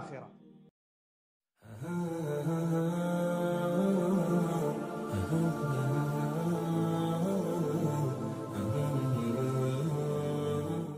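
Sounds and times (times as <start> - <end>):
person singing unaccompanied: 1.7 - 10.9.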